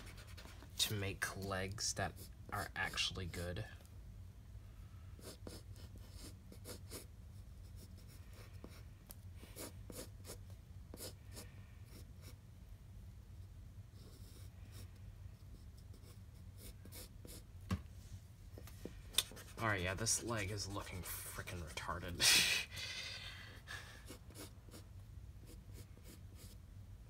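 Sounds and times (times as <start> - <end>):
pencil scratching on paper: 0.0 - 0.7, 5.2 - 8.8, 9.4 - 12.4, 13.9 - 17.5, 19.2 - 20.0, 24.0 - 26.6
faint low hum: 0.0 - 27.0.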